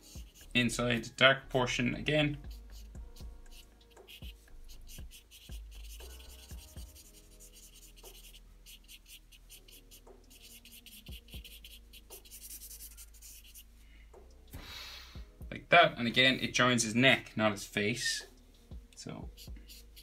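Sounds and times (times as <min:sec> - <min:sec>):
marker scratching on paper: 0:00.0 - 0:00.8, 0:02.0 - 0:13.7, 0:19.3 - 0:20.0.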